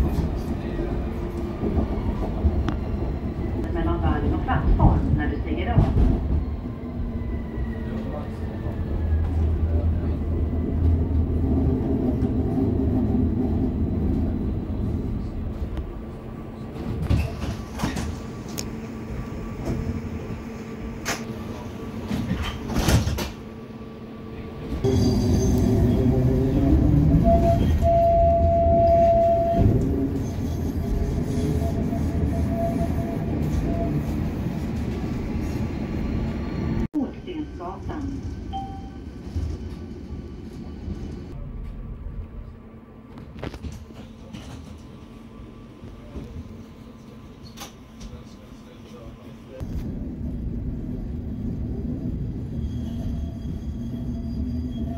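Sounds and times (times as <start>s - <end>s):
tram rolling on rails: 0.0s - 54.9s.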